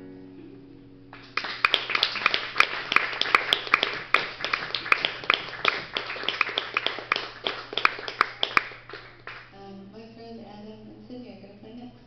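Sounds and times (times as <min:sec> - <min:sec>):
small audience applauding: 0:01.1 - 0:09.6.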